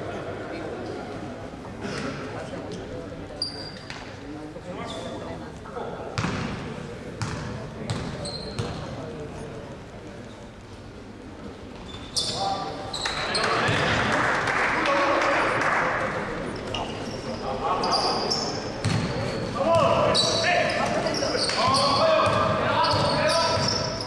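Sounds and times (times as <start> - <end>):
sneaker squeaks: 3.4 - 4.1, 4.8 - 5.2, 7.2 - 8.9, 11.7 - 13.8, 16.5 - 24.0
basketball bouncing on court: 6.2 - 6.6, 7.2 - 8.8, 18.8 - 19.2, 21.7 - 23.9
echoing voices: 12.3 - 24.0.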